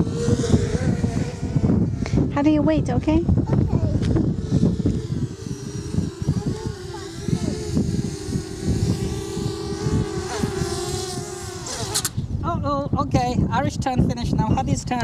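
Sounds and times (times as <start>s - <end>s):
quadcopter motors whining: 0.0s - 15.0s.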